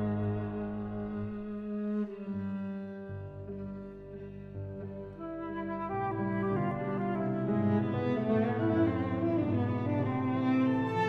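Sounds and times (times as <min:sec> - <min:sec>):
flute viola and piano trio: 0:00.0 - 0:11.0.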